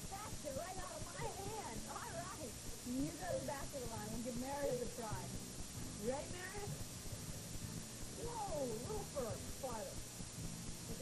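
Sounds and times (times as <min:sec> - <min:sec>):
tape hiss: 0:00.0 - 0:11.0.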